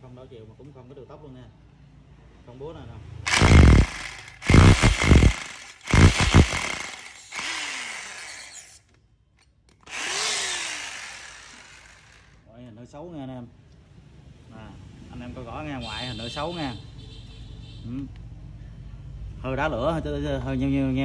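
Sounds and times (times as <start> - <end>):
electric drill boring into wood: 3.3 - 8.8, 9.8 - 12.4.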